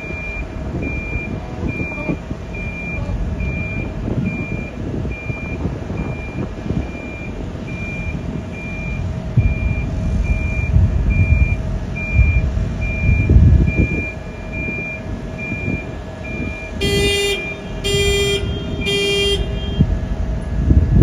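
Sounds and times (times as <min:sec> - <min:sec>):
reversing alarm beeping: 0:00.0 - 0:19.9
engine rumble: 0:00.0 - 0:21.0.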